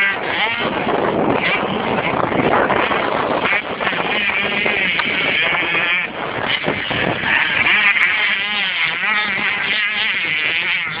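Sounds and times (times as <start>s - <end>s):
motocross bike engine revving: 0.0s - 11.0s.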